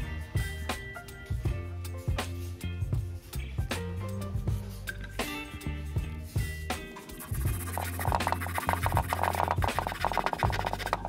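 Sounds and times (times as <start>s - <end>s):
background music with bass line: 0.0s - 11.0s.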